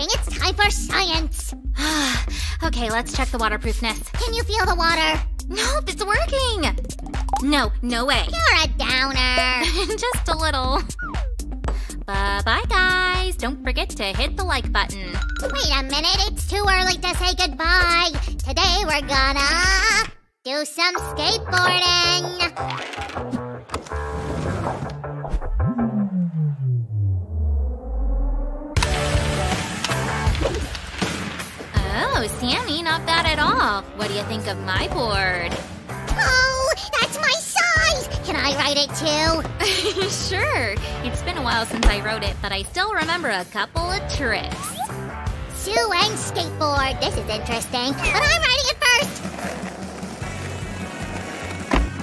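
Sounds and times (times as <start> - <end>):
background music: 0.0 - 27.6, 28.8 - 52.0
skateboard wheels rolling: 48.1 - 52.0.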